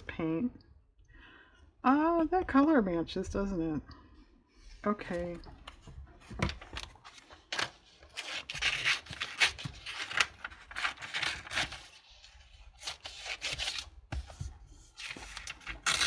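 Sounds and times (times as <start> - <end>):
paper rustling: 5.0 - 16.0
scissors snipping paper: 7.6 - 13.9, 15.0 - 16.0.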